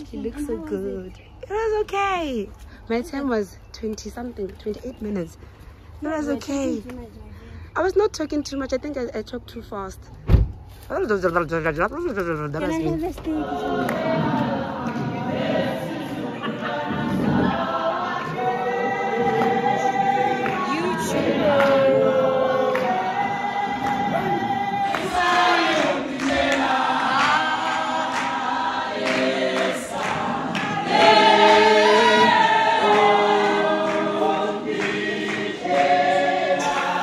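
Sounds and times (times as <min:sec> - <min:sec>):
choir singing gospel: 0:12.6 - 0:37.0.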